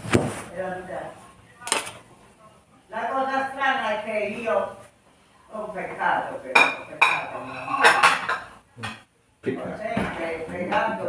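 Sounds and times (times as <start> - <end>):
ceramic plates clattering on stone: 6.6 - 9.0.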